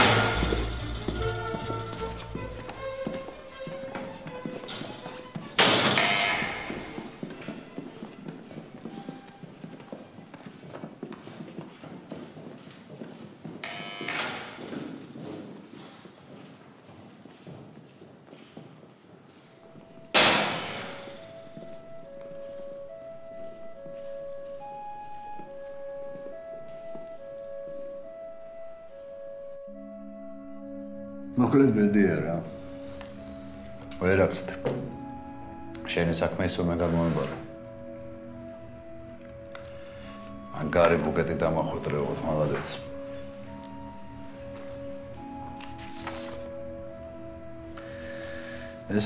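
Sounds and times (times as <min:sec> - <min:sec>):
heavy metal doors slamming: 0:00.0 - 0:02.6, 0:05.5 - 0:07.0, 0:20.1 - 0:21.4
slow melody of held notes: 0:00.0 - 0:05.8, 0:19.6 - 0:49.0
footsteps: 0:00.0 - 0:27.7, 0:39.2 - 0:47.1.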